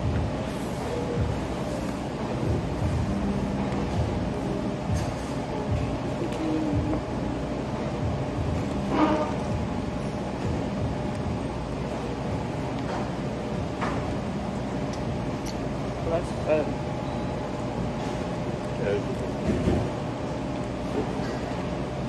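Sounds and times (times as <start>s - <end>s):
steady hum: 0.0s - 22.0s.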